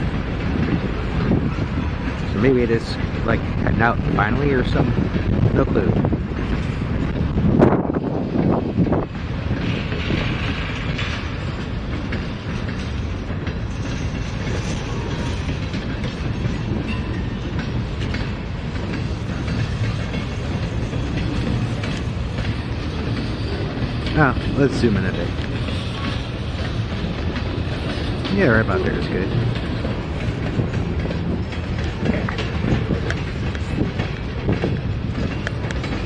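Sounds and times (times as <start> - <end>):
freight train rumbling past: 0.0 - 36.0.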